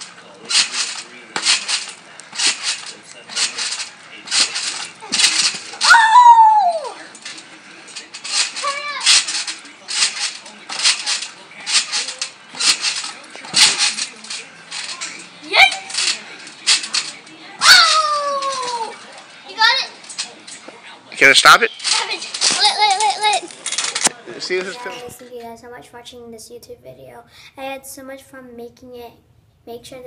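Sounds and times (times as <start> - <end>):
trampoline springs creaking: 0.0 - 25.3
child crying out: 5.8 - 7.0, 17.6 - 18.5.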